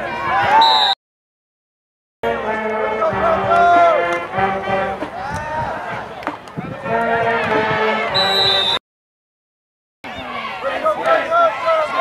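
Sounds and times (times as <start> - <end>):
brass band playing chords: 2.2 - 5.2, 6.8 - 8.7
voices shouting: 10.1 - 12.0.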